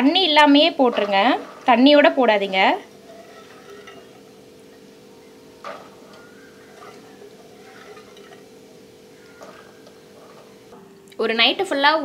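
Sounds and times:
steady low hum: 0:00.0 - 0:11.8
beans being handled in a pot: 0:00.7 - 0:10.7.

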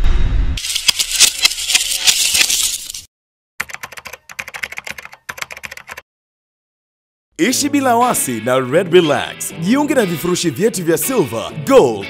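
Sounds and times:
keyboard typing clicks: 0:03.6 - 0:06.0.

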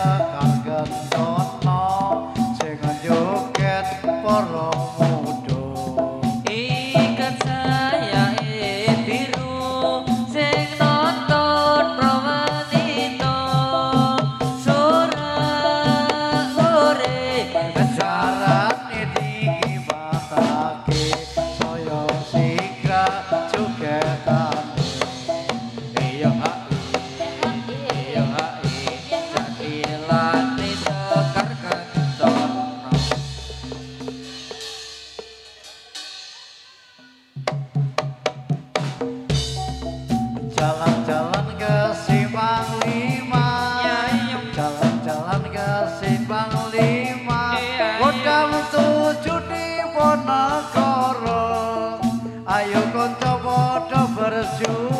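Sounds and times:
metallophone melody: 0:00.0 - 0:36.3, 0:39.2 - 0:54.9
hand drums beating quick rhythm: 0:00.0 - 0:54.9.

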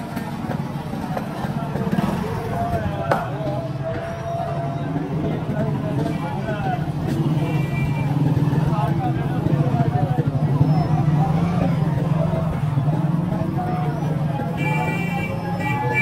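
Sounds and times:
crowd chatter: 0:00.0 - 0:16.0.

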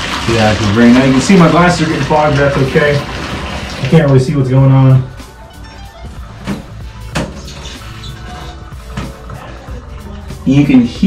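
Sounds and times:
water gurgling down a drain: 0:00.0 - 0:04.2
background music: 0:00.0 - 0:11.0.

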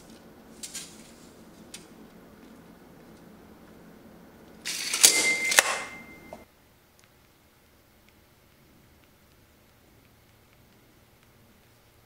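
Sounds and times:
tape measure retracting: 0:04.7 - 0:05.9
metallic ring: 0:04.7 - 0:06.4.

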